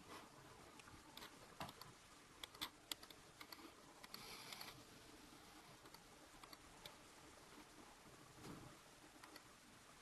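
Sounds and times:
computer clicking: 0.8 - 4.8, 5.8 - 7.0, 9.2 - 9.5.

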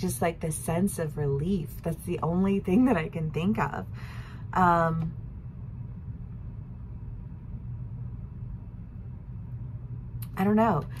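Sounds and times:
faint hum: 0.0 - 11.0
steady low rumble: 0.0 - 11.0.

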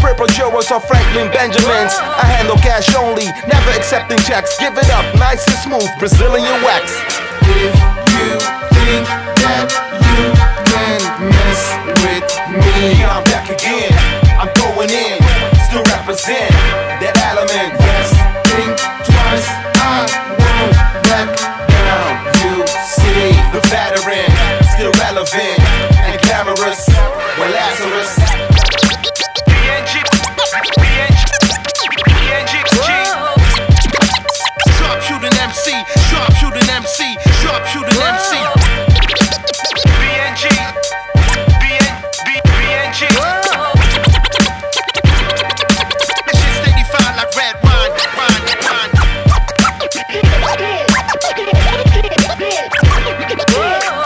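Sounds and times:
hip hop beat with kick drums: 0.0 - 54.0
turntable scratching: 0.0 - 54.0
vocal snippet: 1.0 - 54.0.

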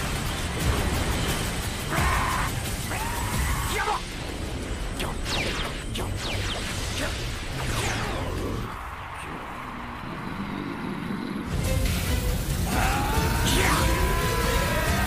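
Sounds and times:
background music: 0.0 - 8.9, 11.5 - 15.0.

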